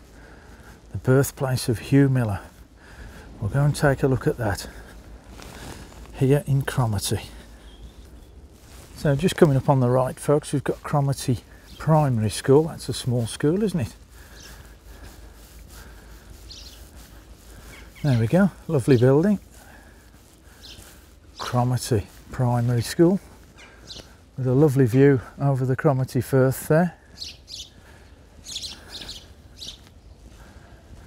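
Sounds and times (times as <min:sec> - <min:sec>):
low outdoor background: 0:00.0 - 0:31.0
low street rumble: 0:00.0 - 0:31.0
small bird chirping: 0:07.5 - 0:08.5, 0:16.4 - 0:17.0, 0:17.6 - 0:19.2, 0:20.5 - 0:21.6, 0:23.6 - 0:24.2, 0:27.2 - 0:27.8, 0:28.4 - 0:30.3.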